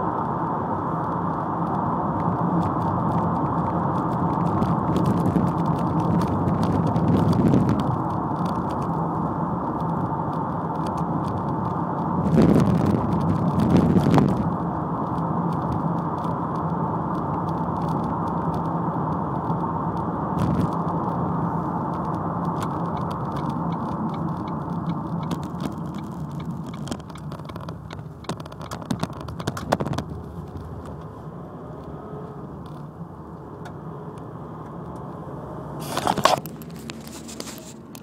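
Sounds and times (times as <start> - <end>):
car engine and road noise: 0.0 - 38.0.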